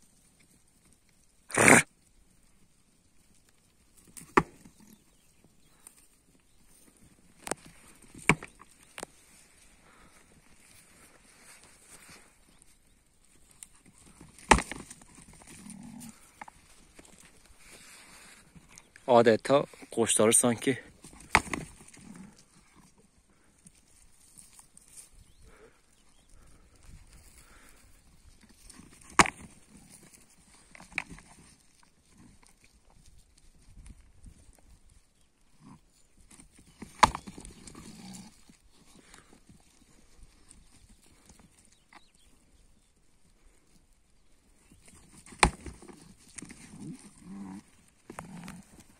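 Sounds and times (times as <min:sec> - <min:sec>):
hoof steps on dry ground: 0:00.0 - 0:48.9.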